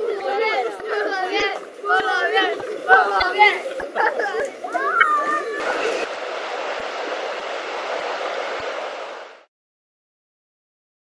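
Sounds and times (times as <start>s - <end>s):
river rushing over weir: 0.6s - 9.5s.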